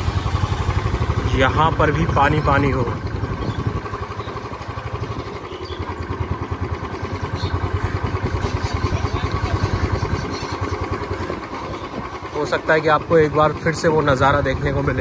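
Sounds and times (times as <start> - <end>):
road and air noise: 0.0 - 14.4
small motorcycle engine running: 0.0 - 15.0.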